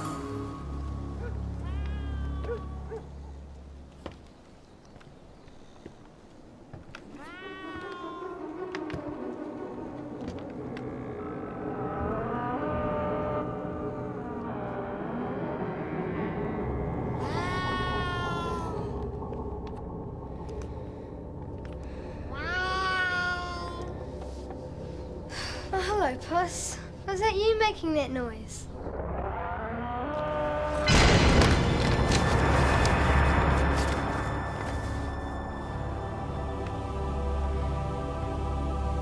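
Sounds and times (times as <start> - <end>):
low background music: 0.0 - 4.1, 7.0 - 39.0
cat meowing: 1.2 - 3.0, 7.2 - 8.6, 17.2 - 18.9, 22.3 - 23.9.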